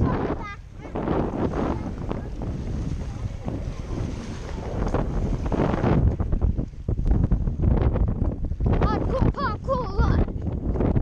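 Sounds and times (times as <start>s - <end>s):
waves washing against stone: 0.0s - 7.5s
wind buffeting microphone: 0.0s - 11.0s.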